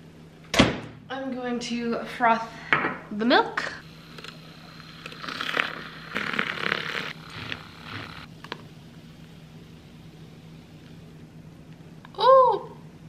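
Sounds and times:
milk frother whirring: 0:03.8 - 0:10.5.

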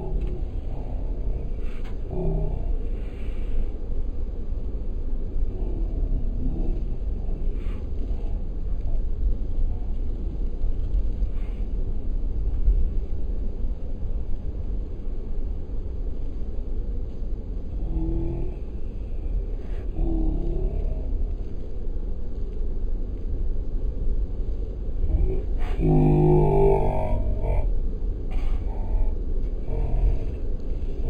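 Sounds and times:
car interior rumble: 0:00.0 - 0:31.0.

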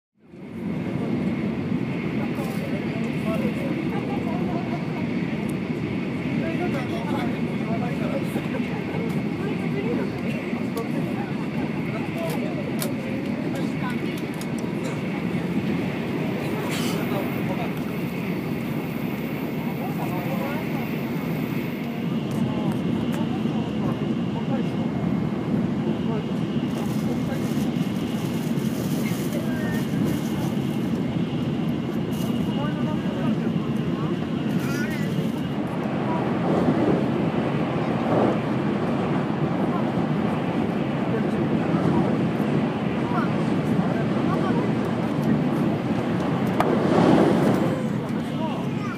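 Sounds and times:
indistinct passenger voices: 0:00.2 - 0:48.9.

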